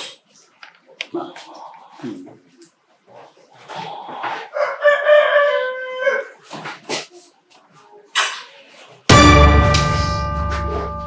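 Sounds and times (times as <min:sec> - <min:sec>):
rooster crowing: 0:04.5 - 0:06.4.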